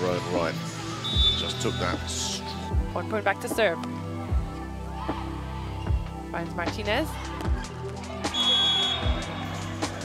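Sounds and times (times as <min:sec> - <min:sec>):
background music with beat: 0:00.0 - 0:10.0
referee's whistle blast: 0:01.0 - 0:02.2, 0:08.3 - 0:09.2.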